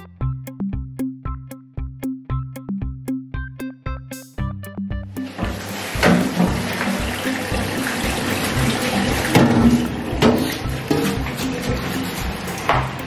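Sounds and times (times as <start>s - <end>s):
background music with plucked notes: 0.0s - 13.0s
tap water running into steel sink: 5.2s - 13.0s.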